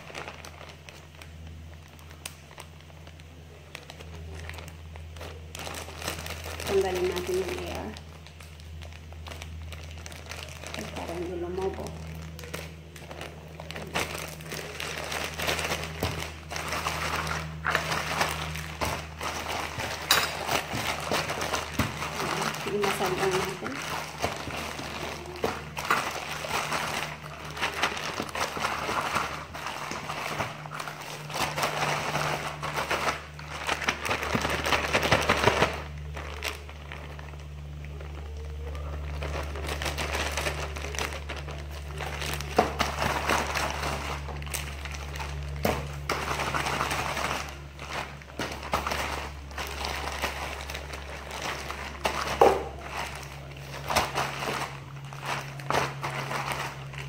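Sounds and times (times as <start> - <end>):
plastic bag crinkling: 0.0 - 57.0.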